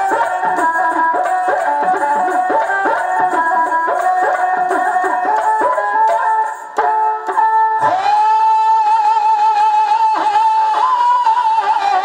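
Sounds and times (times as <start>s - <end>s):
bowed string instrument: 0.0s - 12.0s
hand drums: 0.0s - 12.0s.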